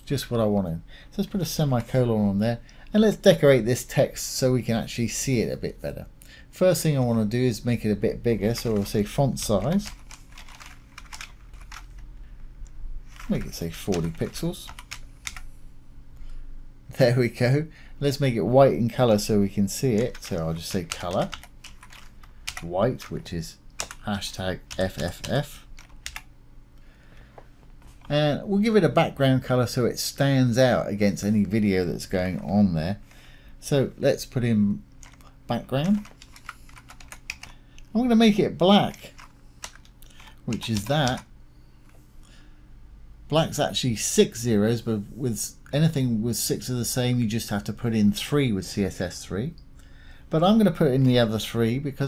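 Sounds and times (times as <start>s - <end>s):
computer keyboard typing: 8.4s - 12.0s, 13.1s - 15.5s, 19.8s - 26.3s, 35.0s - 37.6s, 38.8s - 41.2s.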